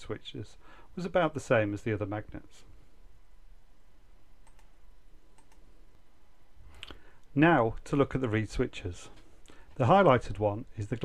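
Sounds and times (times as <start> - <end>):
faint clicks: 4.4 - 4.7, 5.3 - 5.7.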